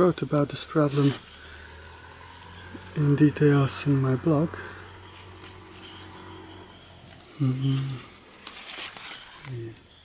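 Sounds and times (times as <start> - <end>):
faint outdoor background hiss: 0.0 - 10.0
man speaking: 2.9 - 4.8, 7.4 - 8.2.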